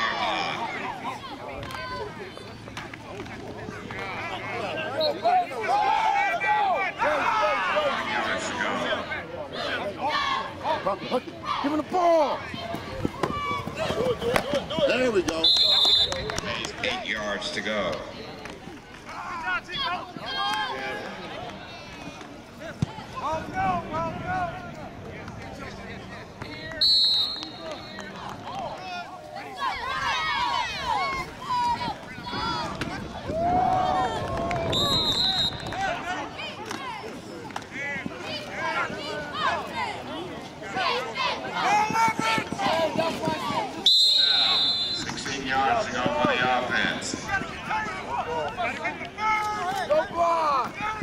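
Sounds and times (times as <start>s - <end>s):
voices shouting: 3.7s - 16.5s, 27.2s - 51.0s
referee's whistle: 4.9s - 5.3s, 15.4s - 16.4s, 26.7s - 28.0s, 34.6s - 35.8s, 43.8s - 45.3s.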